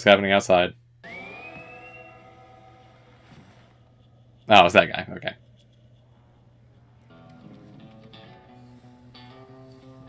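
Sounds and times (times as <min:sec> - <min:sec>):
high rising tone: 0:01.0 - 0:04.5.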